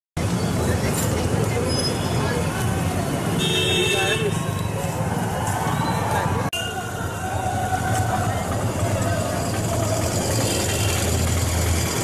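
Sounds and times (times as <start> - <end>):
indistinct voices: 0.5 - 12.0.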